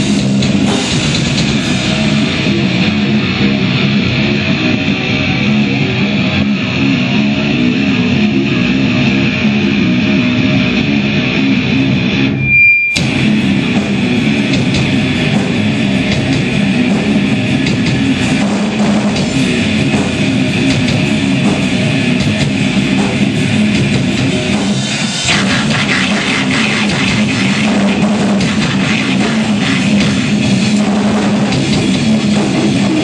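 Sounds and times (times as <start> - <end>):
metal band playing live: 0.0 - 33.0
high steady tone: 12.2 - 13.1.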